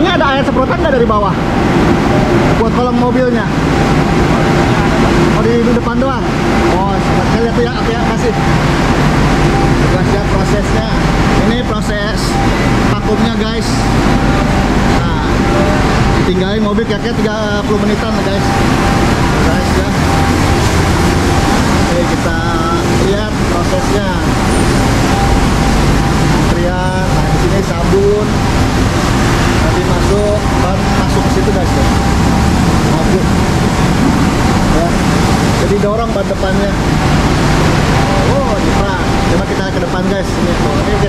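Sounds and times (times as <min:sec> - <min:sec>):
car wash water spray and machinery: 0:00.0 - 0:41.0.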